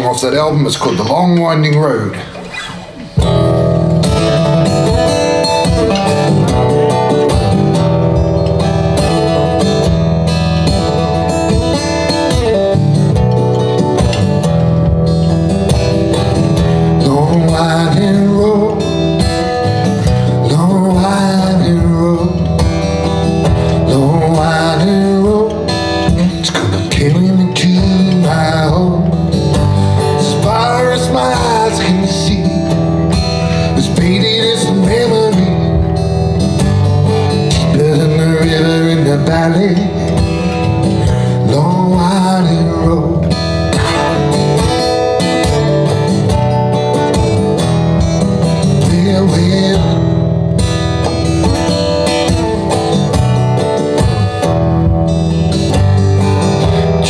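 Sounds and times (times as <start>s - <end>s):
acoustic guitar blues: 0.0s - 57.0s
man singing: 16.1s - 36.3s, 37.1s - 51.3s.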